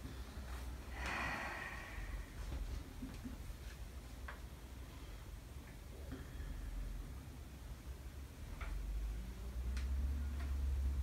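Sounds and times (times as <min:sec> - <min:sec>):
faint room hum: 0:00.0 - 0:11.0
person breathing out through nose: 0:00.9 - 0:02.6.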